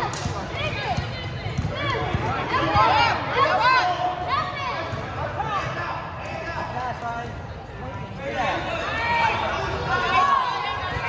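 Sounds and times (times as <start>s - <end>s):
spectators' voices: 0.0s - 11.0s
sneakers squeaking on court: 0.1s - 2.8s
basketball bouncing: 0.1s - 2.9s.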